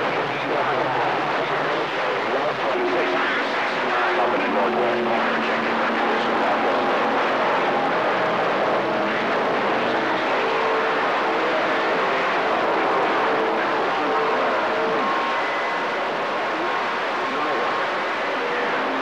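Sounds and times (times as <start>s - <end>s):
radio static: 0.0s - 19.0s.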